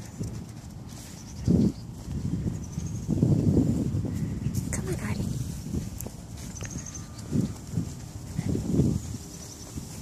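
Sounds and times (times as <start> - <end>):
footsteps on concrete: 4.1 - 10.0.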